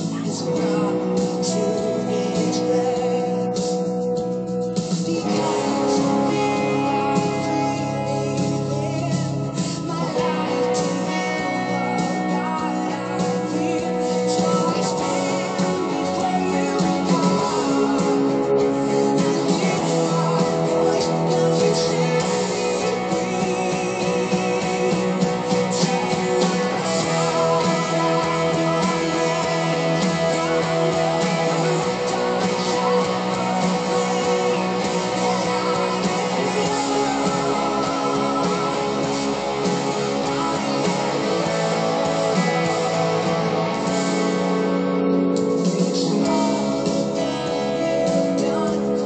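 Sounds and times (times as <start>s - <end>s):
electric guitar ringing chords: 0.0s - 49.0s.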